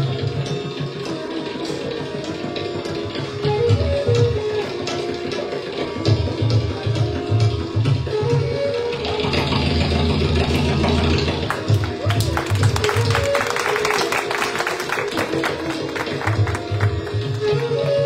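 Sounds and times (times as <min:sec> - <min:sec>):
bamboo flute melody: 0:00.0 - 0:18.0
tabla playing: 0:00.0 - 0:18.0.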